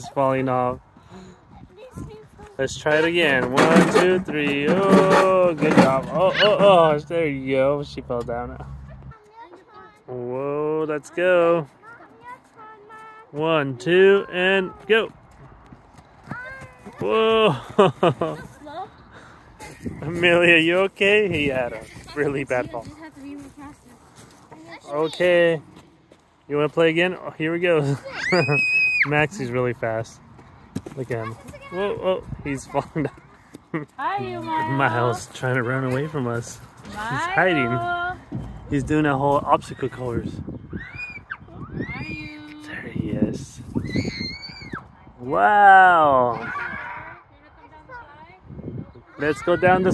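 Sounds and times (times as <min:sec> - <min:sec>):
children calling out and squealing: 0:06.0 - 0:07.0, 0:27.8 - 0:29.2, 0:39.6 - 0:42.8, 0:43.7 - 0:47.7
running footsteps on wood chips: 0:19.6 - 0:26.9, 0:30.2 - 0:39.9
soft scuffs and knocks: 0:30.3 - 0:33.7.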